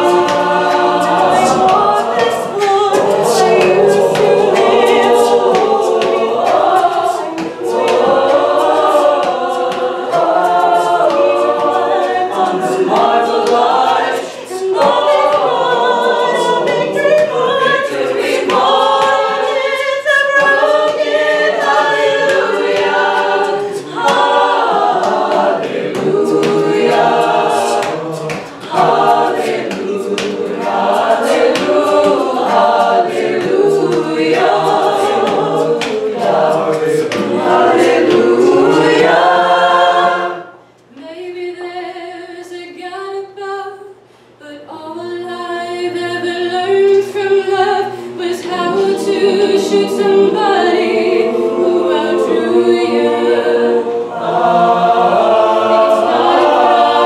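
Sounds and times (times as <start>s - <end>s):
female soloist singing: 0.0s - 30.4s
mixed choir singing a cappella: 0.0s - 57.0s.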